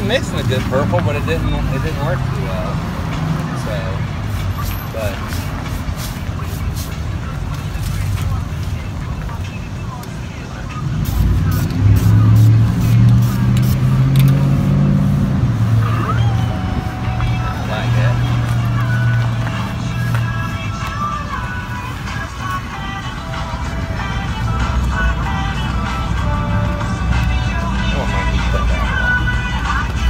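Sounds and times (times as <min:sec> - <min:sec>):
vehicle engine running: 0:00.0 - 0:30.0.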